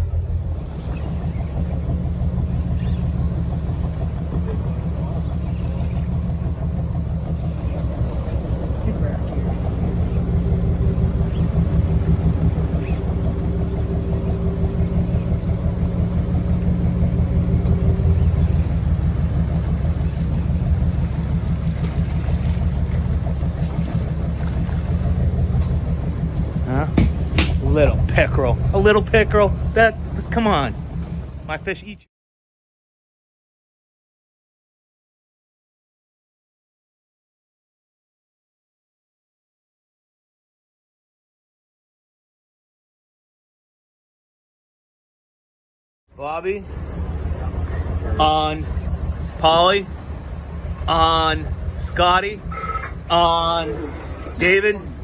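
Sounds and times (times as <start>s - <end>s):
boat engine droning: 0.0s - 32.1s, 46.1s - 55.0s.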